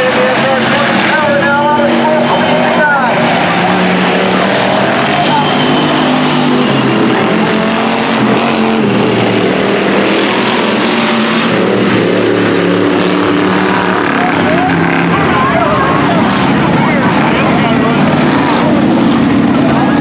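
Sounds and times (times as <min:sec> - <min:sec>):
race car engines: 0:00.0 - 0:20.0.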